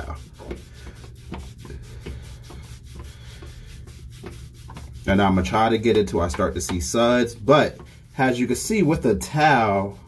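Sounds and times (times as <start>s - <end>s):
wet towel scrubbing skin: 0.0s - 10.0s.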